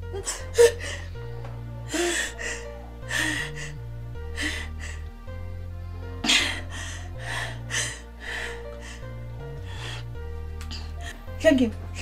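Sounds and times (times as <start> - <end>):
woman crying and sobbing: 0.0 - 5.2, 6.1 - 9.9
background music low held notes: 0.0 - 12.0.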